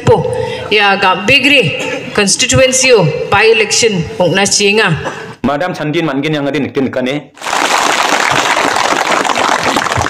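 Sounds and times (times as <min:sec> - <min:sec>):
crowd clapping: 0:07.4 - 0:10.0.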